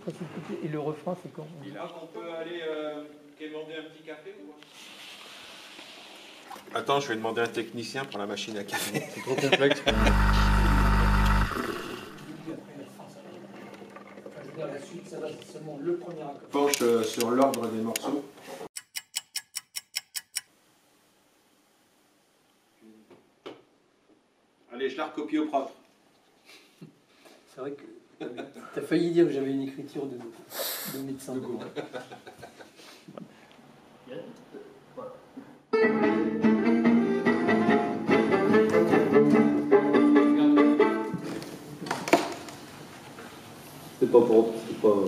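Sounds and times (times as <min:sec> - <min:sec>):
fast clock ticking: 0:18.8 - 0:20.5
guitar and violin swing music: 0:35.8 - 0:41.6.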